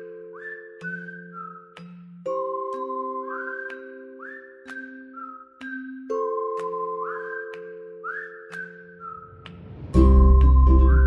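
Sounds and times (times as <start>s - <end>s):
whistled melody: 0.0s - 11.0s.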